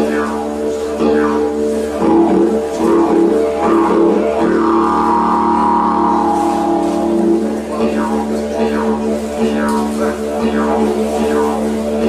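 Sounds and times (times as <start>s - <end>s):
didgeridoo drone: 0.0s - 12.0s.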